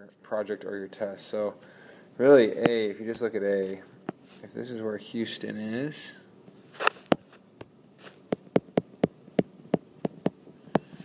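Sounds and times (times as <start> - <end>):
stylus tapping on glass screen: 8.3 - 10.9.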